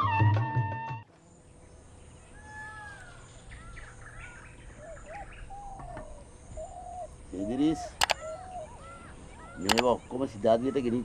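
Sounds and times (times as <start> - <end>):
birds chirping: 1.1 - 10.2
faint background hum: 1.1 - 11.0.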